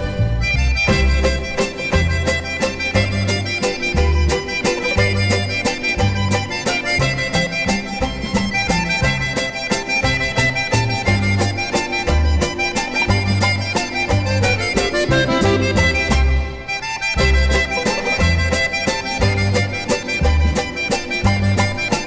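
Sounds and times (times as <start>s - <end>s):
accordion polka band: 0.0s - 22.0s
bouncing bass line: 0.0s - 22.0s.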